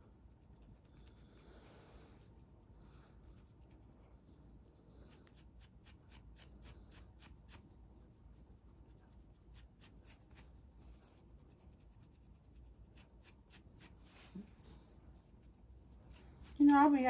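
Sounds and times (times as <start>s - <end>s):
scratching on a scalp: 0.0s - 17.0s.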